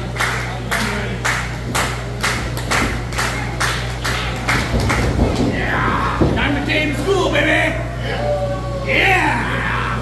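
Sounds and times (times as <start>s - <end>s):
hands clapping in rhythm: 0.0s - 5.1s
steady low hum: 0.0s - 10.0s.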